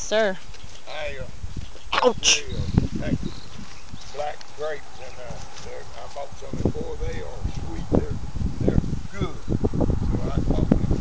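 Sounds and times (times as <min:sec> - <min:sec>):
rustling: 0:03.4 - 0:06.3.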